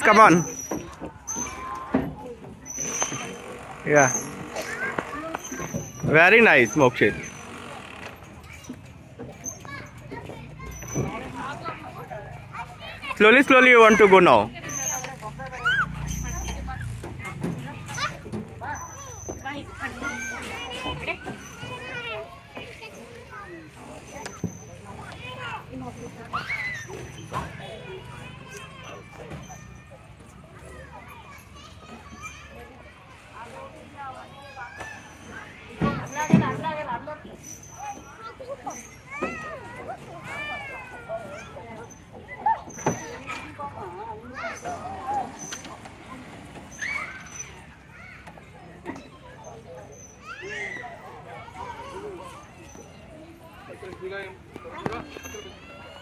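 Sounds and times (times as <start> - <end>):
children calling and chattering: 0.0 - 56.0.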